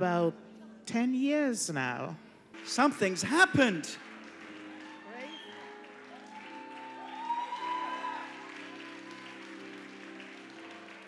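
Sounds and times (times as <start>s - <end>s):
light applause: 2.6s - 11.0s.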